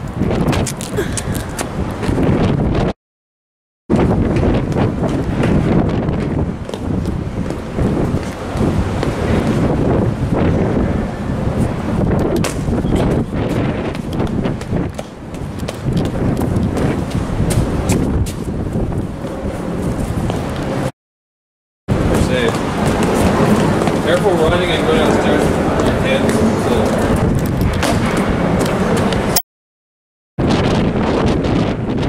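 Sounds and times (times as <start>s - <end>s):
wind buffeting microphone: 0.0s - 3.0s, 3.9s - 20.9s, 21.9s - 29.4s, 30.4s - 32.0s.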